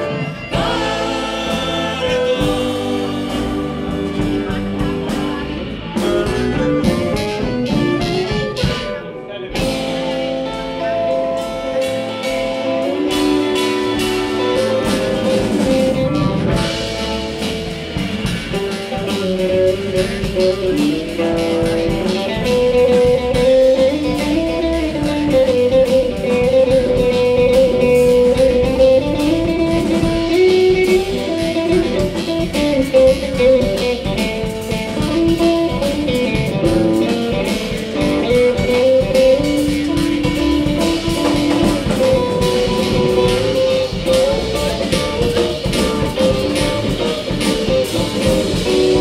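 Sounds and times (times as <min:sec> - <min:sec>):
electric guitar melody: 0:00.0 - 0:49.0
live band playing: 0:00.0 - 0:49.0.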